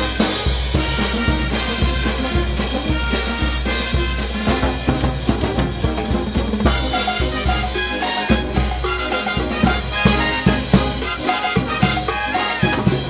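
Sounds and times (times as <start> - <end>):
brass band playing: 0.0 - 13.0
drum kit beat: 0.0 - 13.0.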